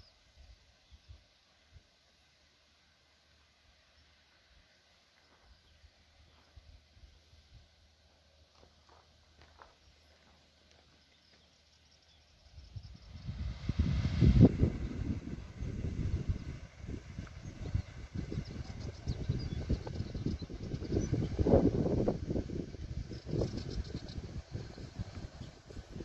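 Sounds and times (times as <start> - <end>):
wind buffeting microphone: 12.6 - 26.0.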